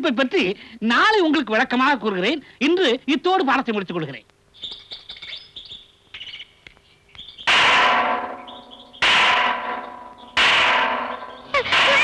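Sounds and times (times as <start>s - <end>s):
birds chirping faintly: 1.7s - 12.0s.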